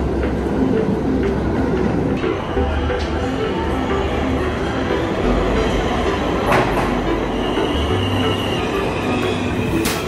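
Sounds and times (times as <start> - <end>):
subway train rumbling over rails: 0.0 - 10.0
high wheel squeal: 7.1 - 10.0.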